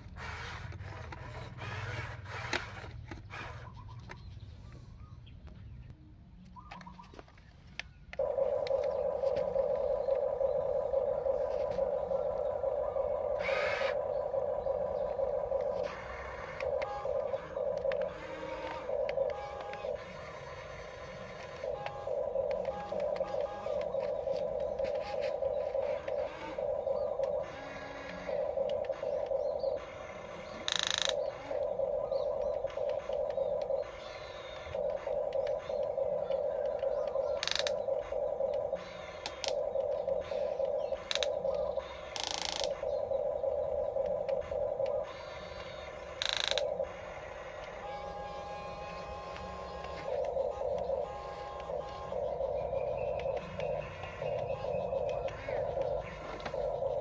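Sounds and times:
small electric motors whining: 0:00.0 - 0:04.2, 0:08.2 - 0:42.9, 0:44.0 - 0:57.0.

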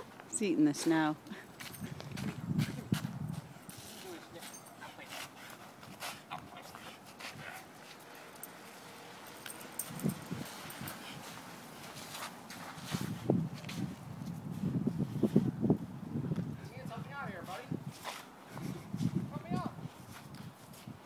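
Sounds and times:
dog footsteps crunching in snow: 0:09.5 - 0:14.0.

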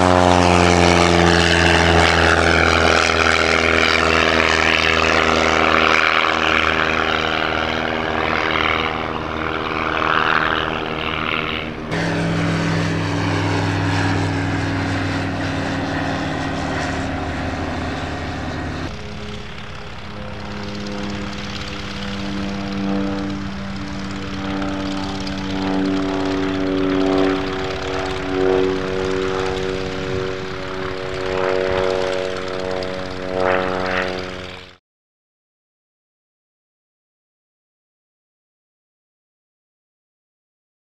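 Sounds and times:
biplane propeller engine: 0:00.0 - 0:34.8.

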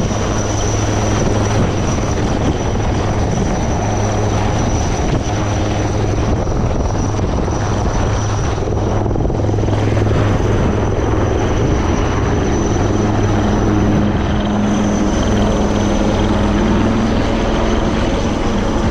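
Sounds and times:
helicopter rotor drone: 0:00.0 - 0:18.9
high turbine whine: 0:00.0 - 0:18.9.

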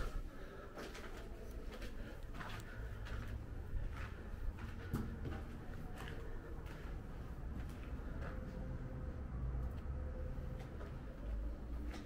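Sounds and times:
footsteps on gritty concrete: 0:00.8 - 0:08.4
low steady rumble: 0:02.6 - 0:12.0.

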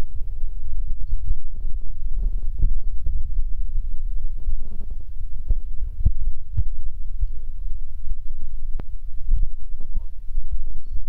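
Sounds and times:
loud steady low rumble: 0:00.0 - 0:11.0.

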